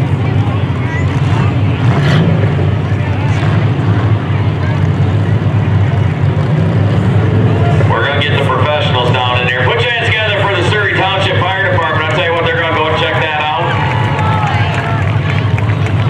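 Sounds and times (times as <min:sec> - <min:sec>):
car engines rumbling: 0:00.0 - 0:16.0
man speaking: 0:07.9 - 0:13.7.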